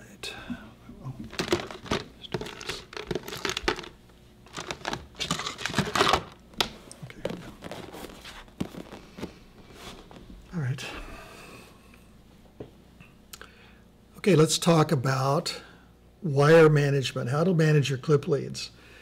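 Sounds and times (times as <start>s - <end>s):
wires rustling and clicking: 1.2s - 9.4s.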